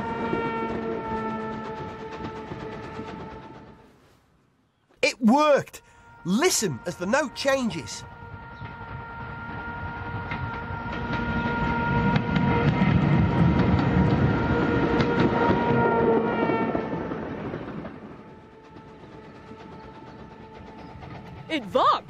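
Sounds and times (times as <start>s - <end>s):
steam train running: 0.0s - 4.0s, 5.0s - 22.0s
brass band holding a note: 5.3s - 8.1s.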